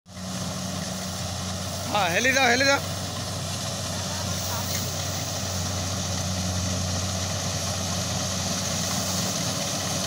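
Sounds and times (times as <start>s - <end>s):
combine harvester engine hum: 0.1s - 10.0s.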